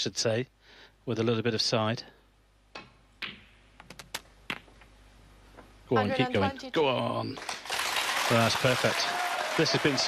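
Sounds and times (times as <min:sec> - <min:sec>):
billiard balls clicking and knocking: 0:02.8 - 0:04.9.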